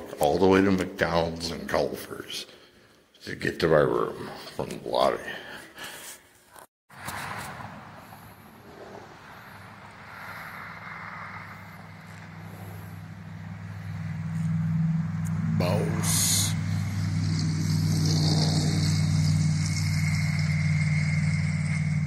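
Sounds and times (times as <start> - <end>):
vehicle engine humming: 7.1 - 22.0.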